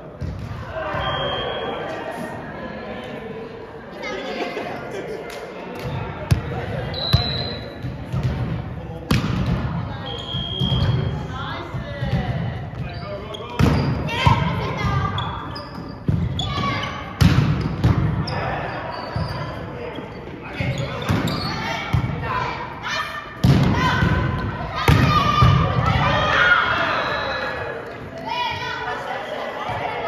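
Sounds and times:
volleyball slaps echoing in hall: 0.0 - 2.3, 5.2 - 30.0.

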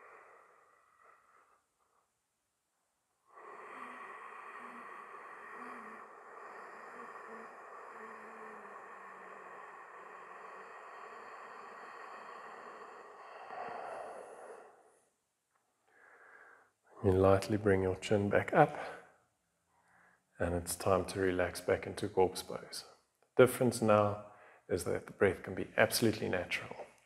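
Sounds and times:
man breathing deeply: 0.0 - 2.1, 3.2 - 15.1, 15.8 - 17.0, 18.7 - 20.3, 24.2 - 24.7.

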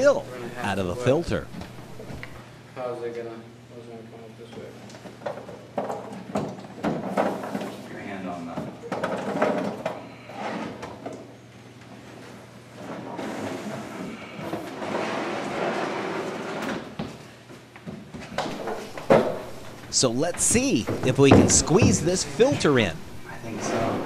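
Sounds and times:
low voices: 0.0 - 1.6, 19.8 - 24.0.

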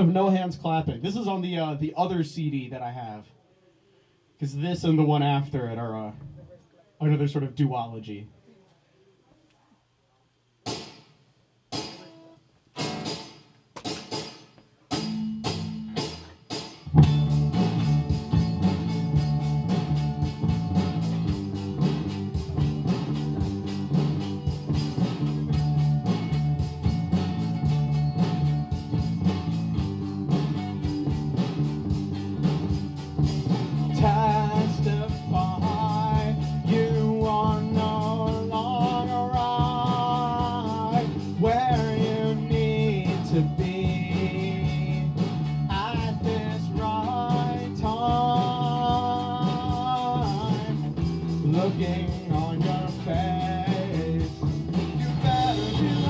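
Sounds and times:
electric guitar: 14.9 - 56.0
backing track with low end: 15.0 - 56.0.

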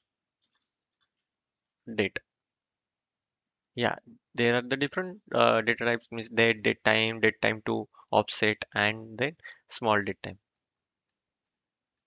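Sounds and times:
man's voice: 1.9 - 2.2, 3.8 - 10.3.

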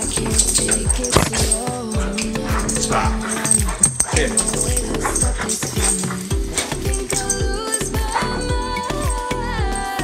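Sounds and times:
background music with steady beat: 0.0 - 10.0
dog barking: 0.4 - 7.4.

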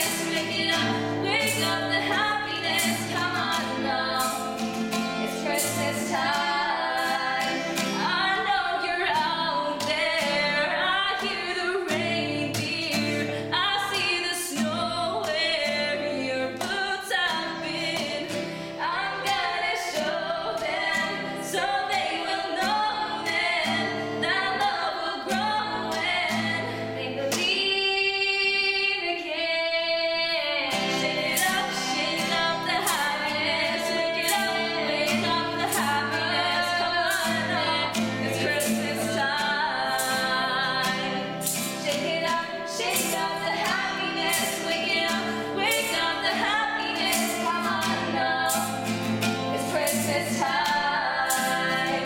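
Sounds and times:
acoustic guitar: 0.0 - 52.0
girls' choir singing: 0.0 - 52.0.

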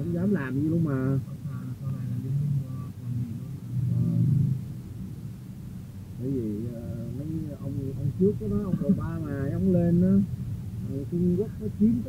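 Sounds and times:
car rumble from inside: 1.5 - 4.9, 6.2 - 12.0.

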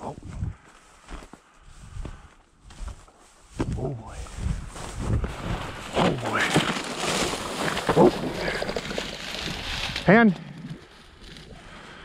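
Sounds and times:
wind on microphone: 0.1 - 0.6, 3.5 - 5.8
dry grass rustling: 0.6 - 12.0.

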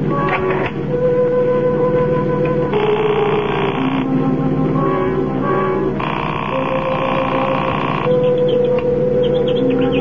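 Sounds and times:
steady held tone: 2.5 - 10.0
telephone ringing: 2.7 - 4.1, 6.0 - 8.4.

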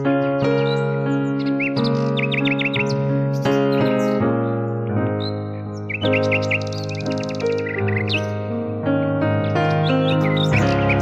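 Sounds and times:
quick bird chirps: 0.0 - 4.2, 5.2 - 8.4, 9.5 - 11.0
held keyboard chords: 0.0 - 11.0.

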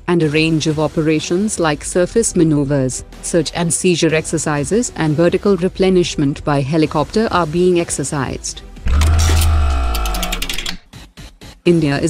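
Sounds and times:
fast ticking clicks: 8.9 - 10.9.

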